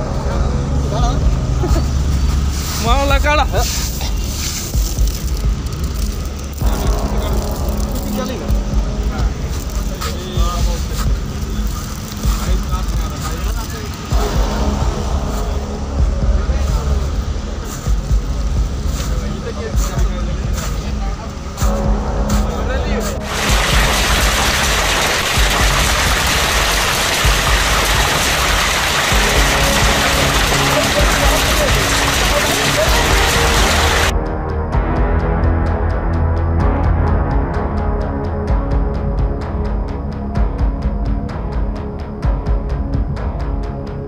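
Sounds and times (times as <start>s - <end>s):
low rumble: 3.7s - 13.1s, 14.0s - 20.5s
hail and rain pouring down: 3.8s - 14.8s, 23.2s - 34.1s
hail knocks: 23.2s - 34.1s.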